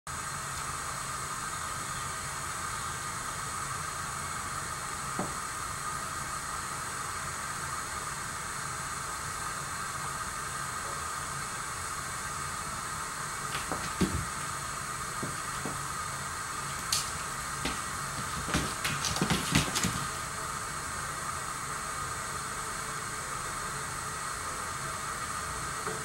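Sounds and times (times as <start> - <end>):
steady background hiss: 0.1 - 26.0.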